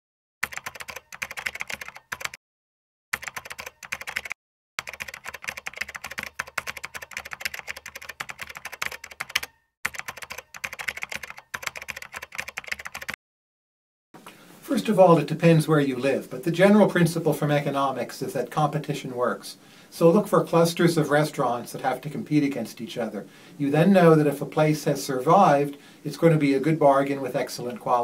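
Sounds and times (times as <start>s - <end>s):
keyboard typing clicks: 0.4s - 2.4s, 3.2s - 13.2s.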